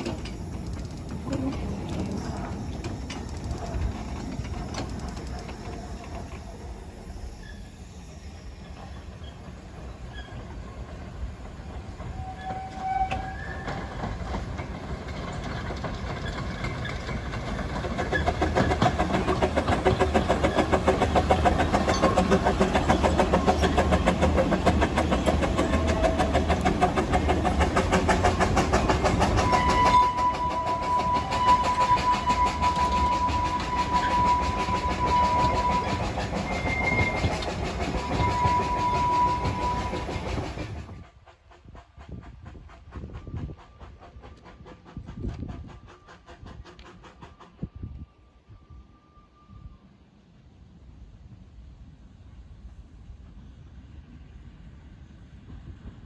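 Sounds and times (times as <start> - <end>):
wheels on rails: 0.0 - 48.1
steam locomotive exhaust: 0.0 - 56.0
high-pitched whistle tone: 29.4 - 37.3.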